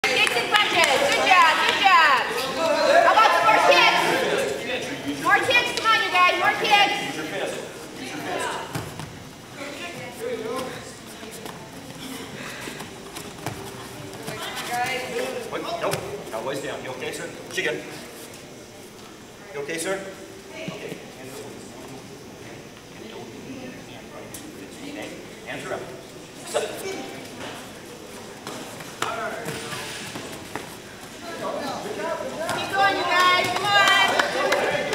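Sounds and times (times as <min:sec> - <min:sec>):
indistinct voices echoing: 0:29.4 - 0:34.9.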